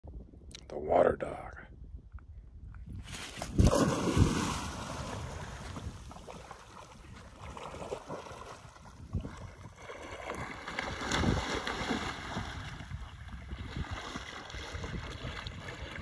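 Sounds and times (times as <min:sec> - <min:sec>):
wind rumble on microphone: 0:00.0 - 0:16.0
dog splashing into river: 0:03.3 - 0:16.0
dog paddling splashes: 0:03.6 - 0:16.0.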